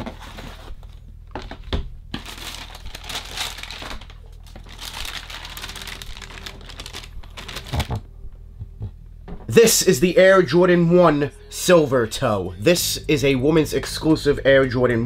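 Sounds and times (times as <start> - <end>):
tissue paper rustling: 2.2 - 8.0.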